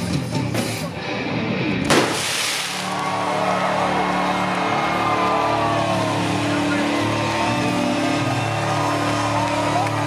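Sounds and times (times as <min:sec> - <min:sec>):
crowd shouting and whooping: 0:02.6 - 0:10.0
low droning rock chord: 0:03.0 - 0:10.0.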